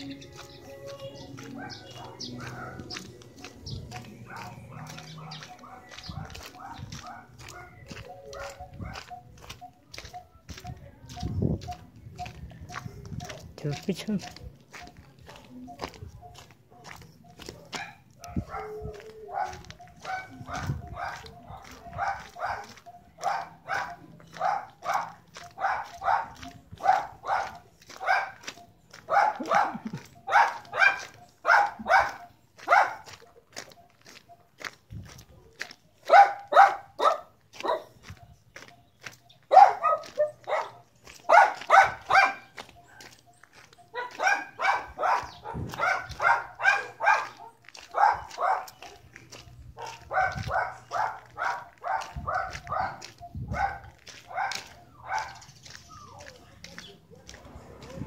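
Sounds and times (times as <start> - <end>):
dog barking: 1.4 - 9.2, 16.7 - 33.4, 36.0 - 38.1, 39.5 - 43.2, 43.9 - 49.2, 49.8 - 55.6.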